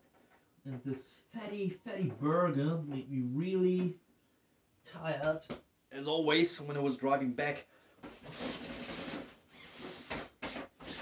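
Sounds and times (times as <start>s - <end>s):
rustling rubbing of handled object: 8.1s - 11.0s.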